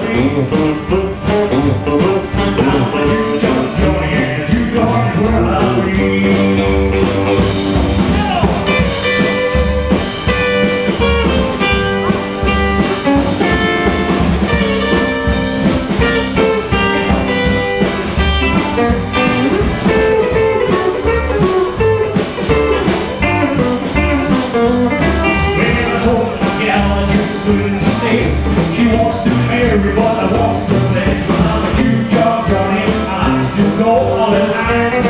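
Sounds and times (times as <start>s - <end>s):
fast electric guitar lead: 0.0s - 35.0s
rockabilly band playing: 0.0s - 35.0s
walking upright bass: 0.0s - 35.0s.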